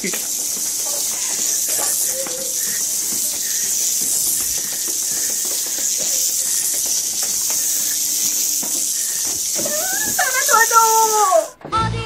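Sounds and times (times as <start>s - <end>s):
loud high hiss: 0.0s - 11.6s.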